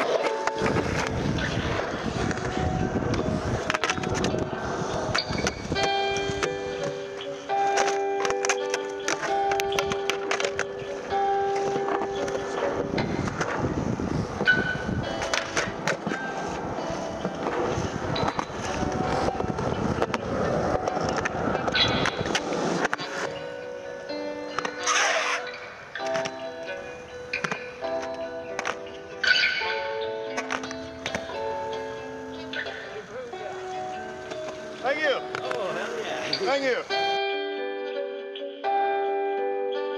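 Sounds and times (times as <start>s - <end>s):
skateboard clacks: 0.0s - 23.5s, 24.4s - 31.9s, 33.7s - 36.5s
music with held melodic notes: 0.0s - 39.9s
skateboard wheels rolling on concrete: 0.0s - 39.9s.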